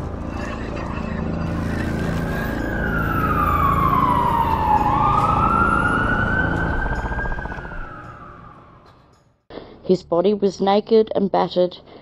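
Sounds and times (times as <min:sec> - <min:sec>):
low steady drone: 0:00.0 - 0:08.9
siren wailing: 0:01.4 - 0:09.1.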